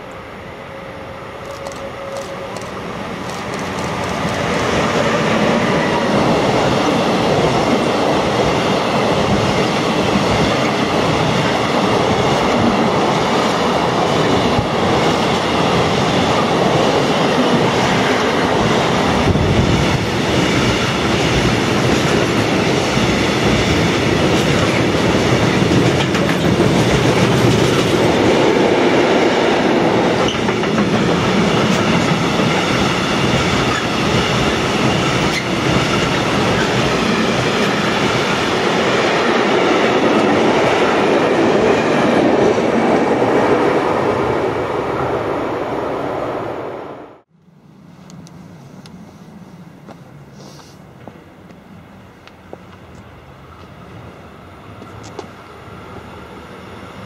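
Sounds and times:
freight train wheels rumbling on rails: 0:00.0 - 0:45.7.

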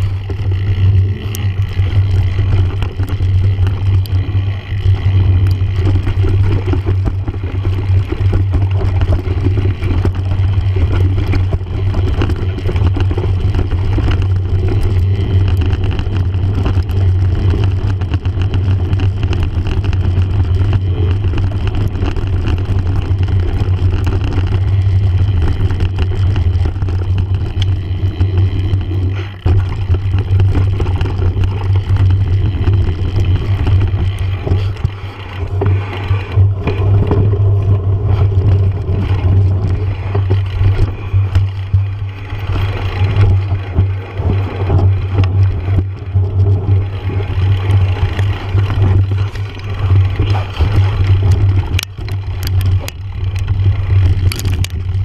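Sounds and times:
bike rattles and knocks: 0:00.0 - 0:55.0
knobby tyres on dirt: 0:00.0 - 0:55.0.

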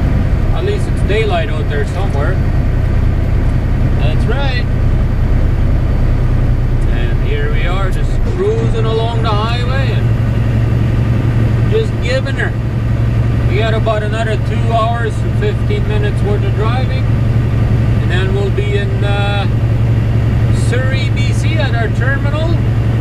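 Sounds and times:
truck engine and road noise: 0:00.0 - 0:23.0
person speaking: 0:06.8 - 0:10.2.

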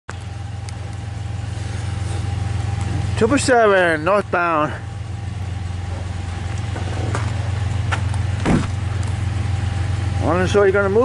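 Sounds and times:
low engine drone: 0:00.1 - 0:11.0.

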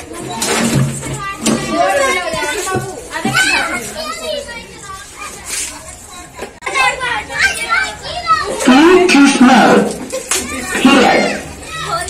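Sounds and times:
adults voices: 0:00.0 - 0:12.0
child shouting: 0:03.3 - 0:04.6, 0:06.7 - 0:08.6, 0:10.4 - 0:12.0.

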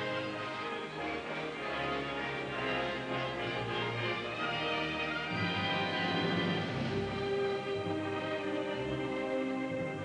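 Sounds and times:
orchestral strings sustained notes: 0:00.0 - 0:10.0.

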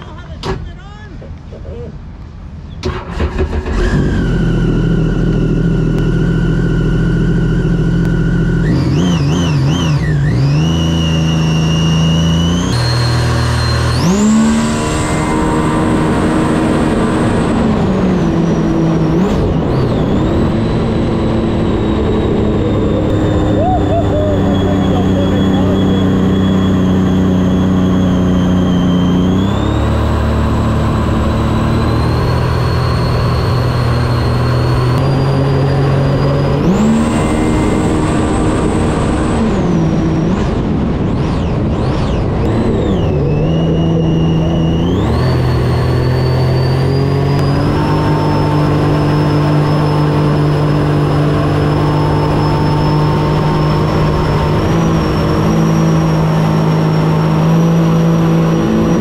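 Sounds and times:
high supercharger whine: 0:02.0 - 0:59.0
jet ski engine running hard: 0:12.7 - 0:27.7, 0:33.1 - 0:59.0.

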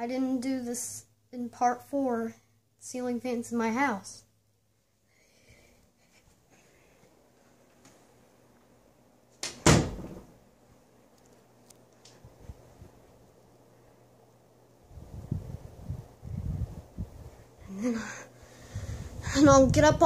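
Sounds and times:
ceiling fan humming: 0:00.0 - 0:20.0.

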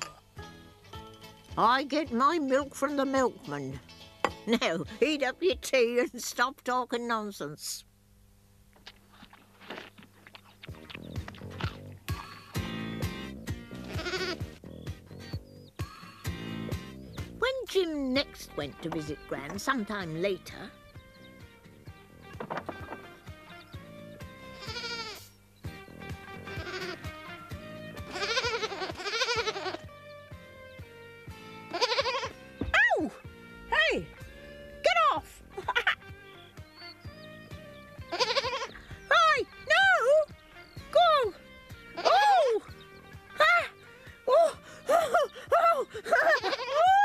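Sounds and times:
background music with steady beat: 0:00.0 - 0:05.8, 0:10.8 - 0:45.1
goat bleating: 0:13.7 - 0:14.6, 0:24.4 - 0:25.4, 0:26.3 - 0:30.0, 0:31.4 - 0:32.4, 0:37.9 - 0:39.1, 0:41.8 - 0:42.6, 0:46.0 - 0:47.0.

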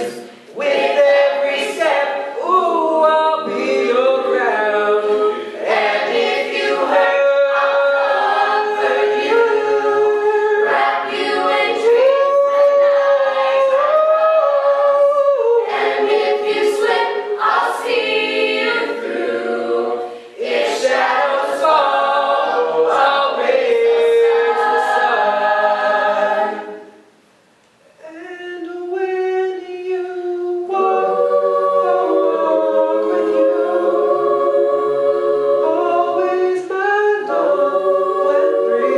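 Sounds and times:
a cappella group singing: 0:00.0 - 0:27.2, 0:28.0 - 0:38.9.

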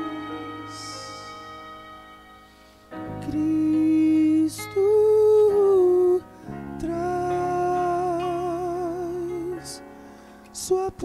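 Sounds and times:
man singing a long note: 0:00.0 - 0:01.3, 0:03.2 - 0:06.2, 0:06.8 - 0:09.8, 0:10.6 - 0:11.0
soft sustained accompaniment: 0:00.0 - 0:11.0.

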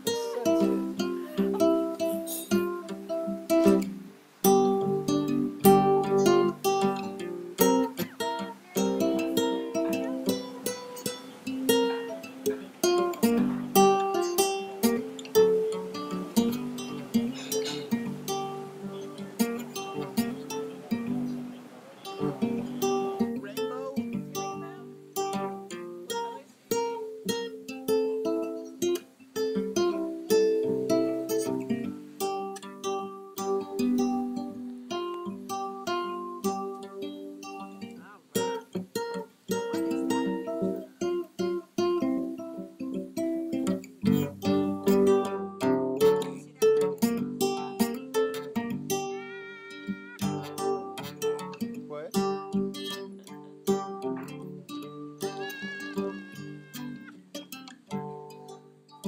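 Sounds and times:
acoustic guitar plucking: 0:00.0 - 0:59.0.

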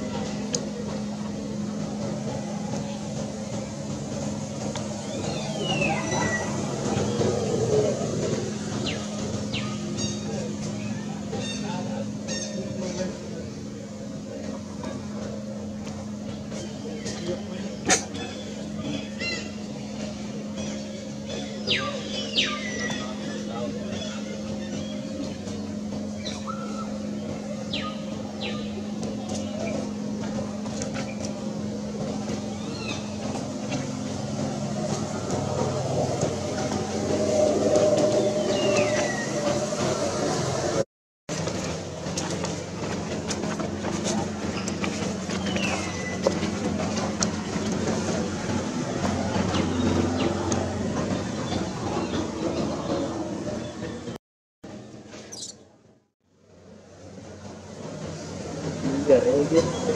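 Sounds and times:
distant voices: 0:00.0 - 0:55.5
steady low hum: 0:00.0 - 0:59.9.

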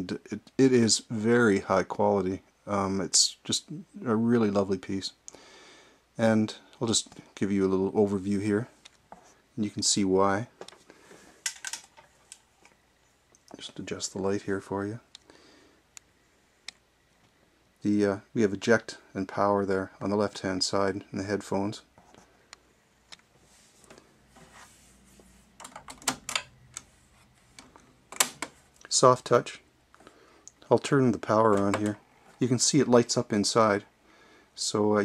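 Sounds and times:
hands clicking and tapping equipment: 0:31.4 - 0:32.0.

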